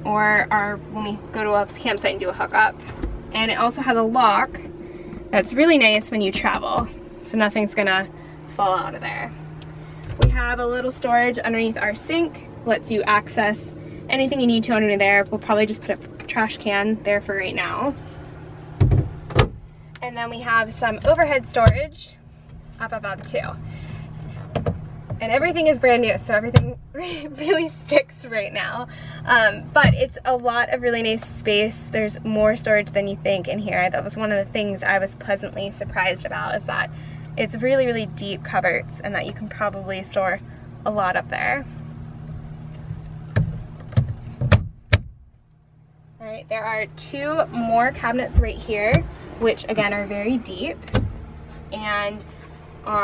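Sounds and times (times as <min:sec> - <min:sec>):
faint low hum: 0:00.0 - 0:53.0.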